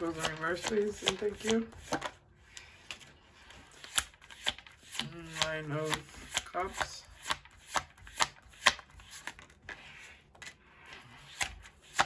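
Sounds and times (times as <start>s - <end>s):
card rustle: 0.0s - 12.0s
cards being shuffled: 0.0s - 12.0s.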